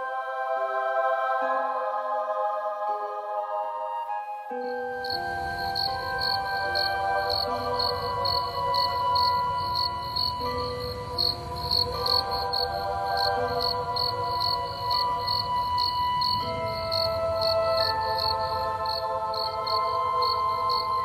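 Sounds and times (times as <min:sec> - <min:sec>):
soft music of held notes: 0:00.0 - 0:21.0
crickets chirping: 0:04.5 - 0:21.0.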